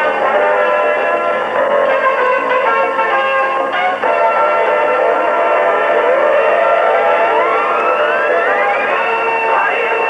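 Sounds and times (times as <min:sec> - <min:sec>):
music of held chords: 0:00.0 - 0:10.0
tones gliding upward: 0:06.0 - 0:10.0.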